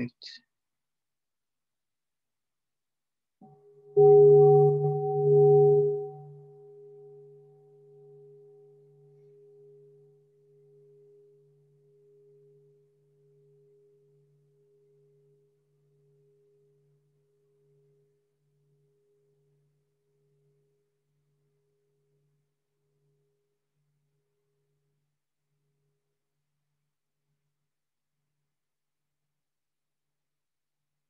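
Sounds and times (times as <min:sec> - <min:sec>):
singing bowl ringing: 0:03.4 - 0:10.1.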